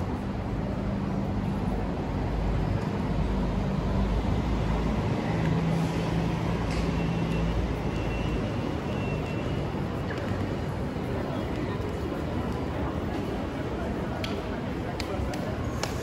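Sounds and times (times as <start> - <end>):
distant city traffic rumble: 0.0 - 16.0.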